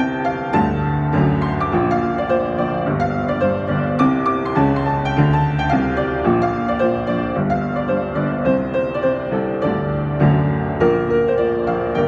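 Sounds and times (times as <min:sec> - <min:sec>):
solo piano: 0:00.0 - 0:12.0.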